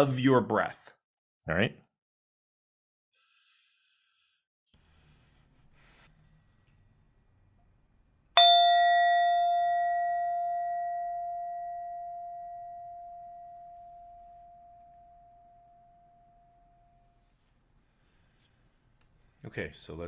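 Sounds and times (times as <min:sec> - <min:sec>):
meditation bell ringing: 0:08.4 - 0:17.2.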